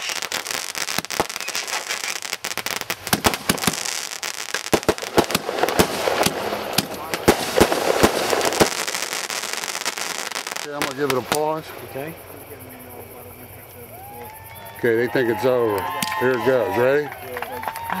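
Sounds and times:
crackling firework sparks: 0:00.0 - 0:14.1
fireworks bursting: 0:00.0 - 0:17.5.

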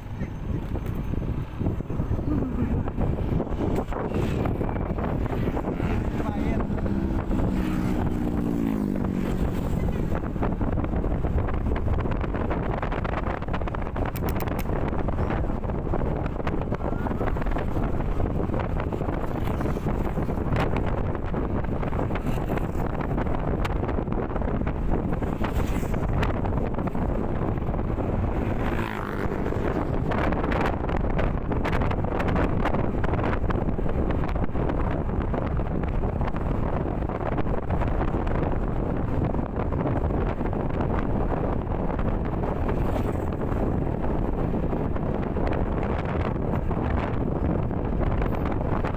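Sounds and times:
tyres on road: 0:00.0 - 0:48.9
wind rushing over microphone: 0:00.0 - 0:48.9.

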